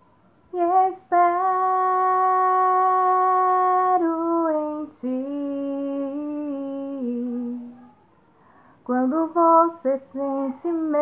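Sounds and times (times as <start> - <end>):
woman singing: 0.5 - 7.8, 8.8 - 11.0.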